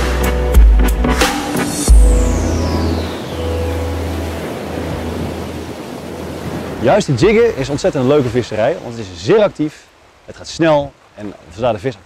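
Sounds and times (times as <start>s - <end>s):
falling electronic sweep: 1.2s - 5.1s
surf breaking on rocks: 1.3s - 12.0s.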